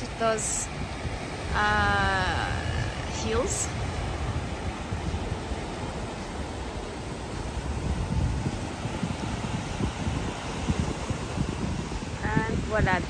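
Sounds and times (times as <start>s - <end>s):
small waves breaking: 0.0s - 13.0s
wind buffeting microphone: 0.0s - 13.0s.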